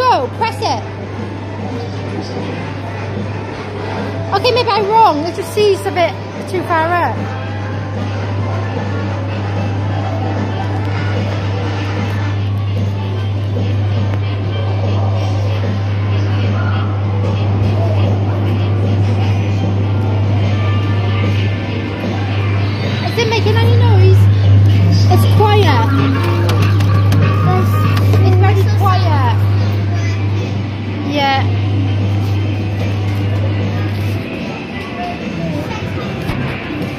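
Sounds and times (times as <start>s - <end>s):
steady low hum: 0.0s - 36.9s
kiddie rides playing music: 1.3s - 36.9s.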